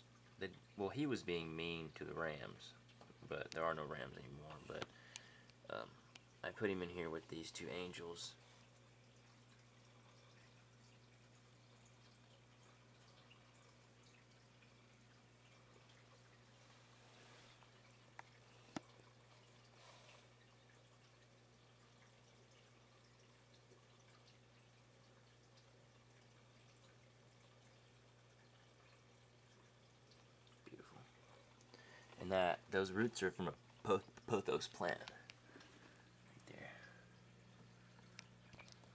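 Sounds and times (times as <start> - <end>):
aquarium filter humming: 0.0 - 38.9
water trickling: 0.0 - 38.9.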